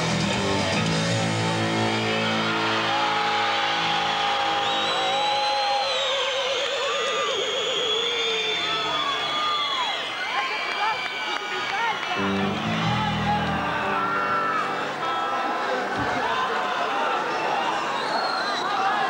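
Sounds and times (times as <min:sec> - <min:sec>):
electric guitar chords ringing: 0:00.0 - 0:04.1, 0:12.2 - 0:15.6
arena crowd noise: 0:00.0 - 0:19.0
rising and falling whistles: 0:04.2 - 0:11.4, 0:17.5 - 0:19.0.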